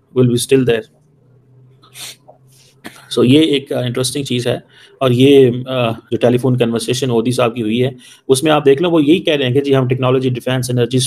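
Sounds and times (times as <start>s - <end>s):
low steady hum: 0.0s - 11.0s
man talking: 0.1s - 0.9s, 2.9s - 11.0s
man breathing noisily: 4.6s - 5.0s.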